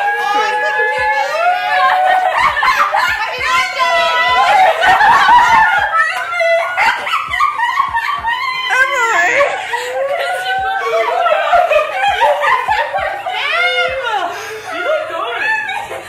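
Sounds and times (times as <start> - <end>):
women laughing: 0.0 - 16.0
women talking: 0.0 - 16.0.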